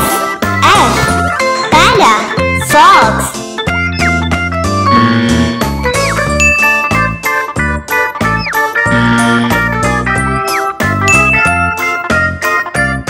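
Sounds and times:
bouncy children's music: 0.0 - 13.0.

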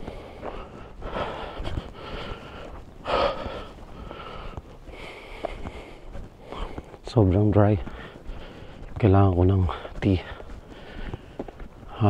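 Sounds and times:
man breathing noisily: 0.0 - 7.0, 7.8 - 9.0, 9.6 - 12.0.

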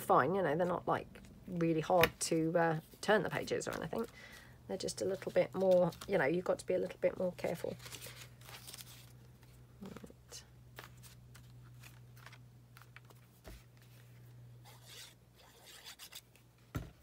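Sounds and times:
rustling of torn paper: 5.1 - 6.2, 7.5 - 9.6.

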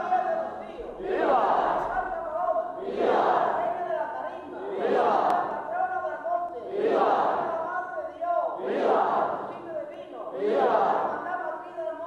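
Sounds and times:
crowd shouting together: 0.9 - 3.8, 4.5 - 5.7, 6.7 - 7.6, 8.5 - 9.6, 10.3 - 11.3.

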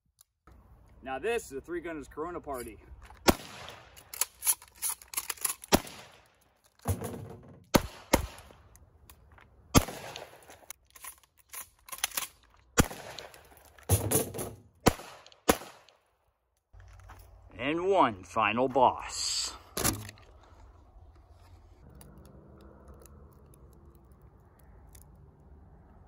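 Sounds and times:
shotgun shots echoing: 3.2 - 4.0, 5.7 - 6.3, 7.7 - 8.6, 9.7 - 10.5, 12.8 - 16.0.

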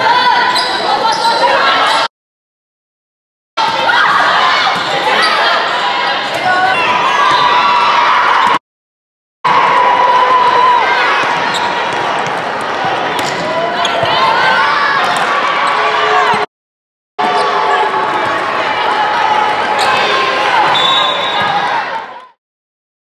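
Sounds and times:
voices echoing in a hall: 0.0 - 2.1, 3.6 - 7.8.

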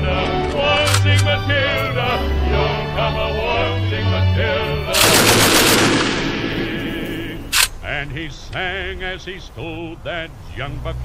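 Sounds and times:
music: 0.0 - 7.6
rapid machine-gun fire: 5.0 - 7.6
sharp crack: 5.0 - 7.8.

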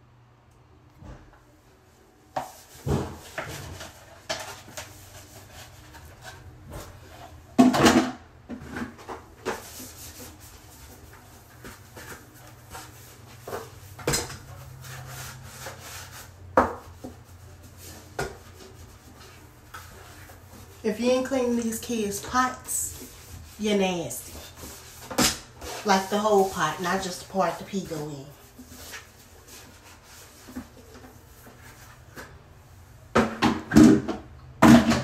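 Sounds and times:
rubbing on plastic: 9.4 - 32.2.

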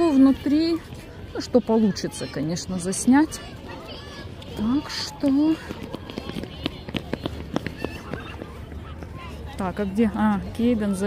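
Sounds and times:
children chattering: 0.0 - 11.0
children shouting: 1.6 - 9.6.

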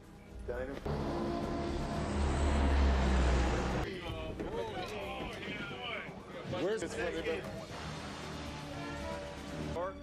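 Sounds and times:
plane engines roaring: 0.9 - 3.9.

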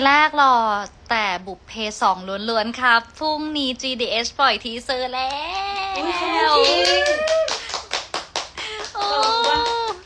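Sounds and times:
hands clapping: 5.2 - 10.0.

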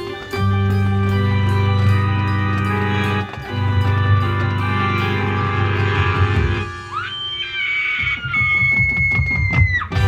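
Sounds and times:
marching band playing: 0.0 - 7.0.

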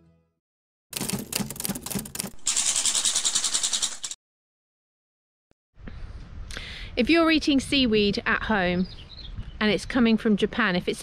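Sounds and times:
sharp clicks: 1.0 - 4.2
split-flap fluttering: 1.0 - 4.2.

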